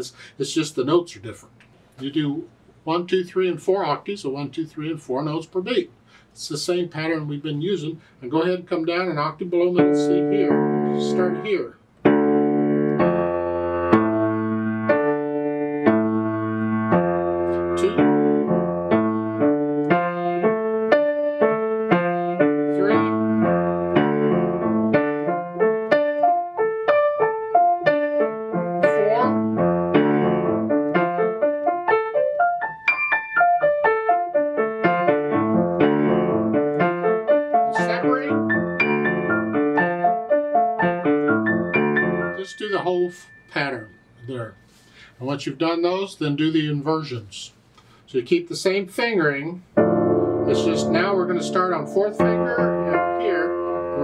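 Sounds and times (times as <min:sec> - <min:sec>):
grand piano arpeggios: 0:09.8 - 0:44.2, 0:49.8 - 0:54.0.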